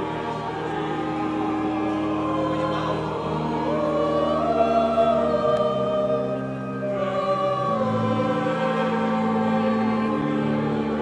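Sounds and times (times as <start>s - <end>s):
choir singing long notes: 0.0s - 11.0s
sustained low accompaniment: 0.0s - 11.0s.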